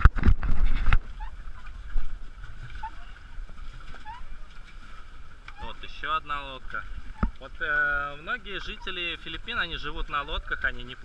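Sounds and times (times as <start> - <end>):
water noise: 0.0 - 11.0
wind: 0.0 - 11.0
faint short squeaks: 0.7 - 2.0, 2.6 - 3.3, 3.9 - 4.4.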